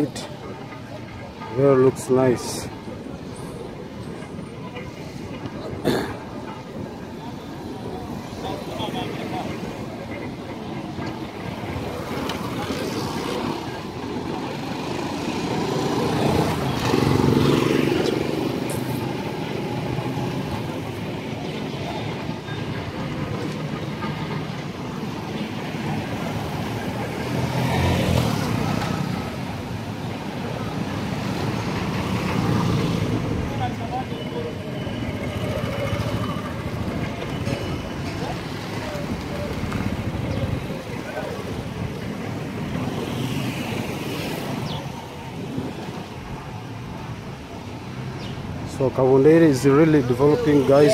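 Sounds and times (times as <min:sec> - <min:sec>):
passing motorcycles and cars: 0:00.0 - 0:50.9
steady road noise: 0:00.0 - 0:50.9
voices of people: 0:00.0 - 0:50.9.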